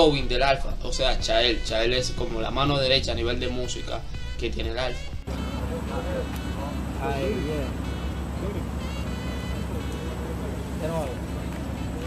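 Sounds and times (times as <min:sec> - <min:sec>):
car engine idling: 0:00.0 - 0:12.0
voices talking: 0:00.0 - 0:12.0.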